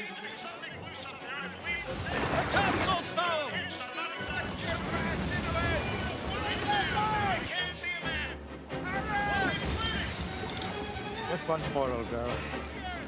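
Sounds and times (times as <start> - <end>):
dramatic film music: 0.0 - 13.0
voices calling out: 0.4 - 13.0
sea noise: 1.8 - 3.1, 4.3 - 7.5, 9.0 - 13.0.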